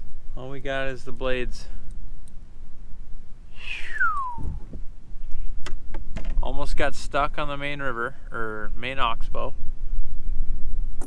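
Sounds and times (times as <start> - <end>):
low rumble: 0.0 - 7.6
whistle gliding down in pitch: 3.6 - 4.6.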